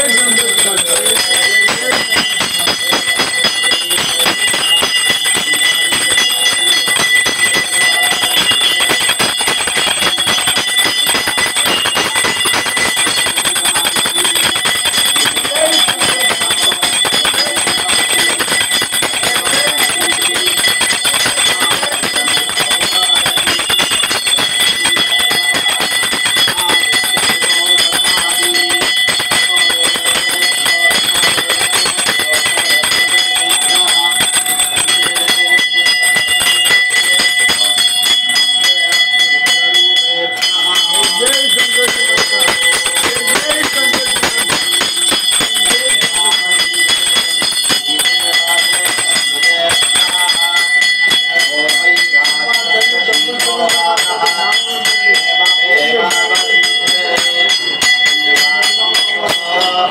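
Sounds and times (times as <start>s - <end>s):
hand bell ringing rapidly: 0.0s - 59.9s.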